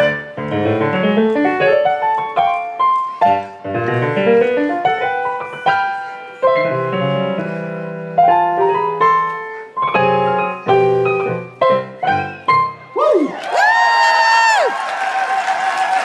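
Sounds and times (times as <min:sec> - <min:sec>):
digital piano chords: 0:00.0 - 0:13.0
person whooping: 0:12.9 - 0:16.0.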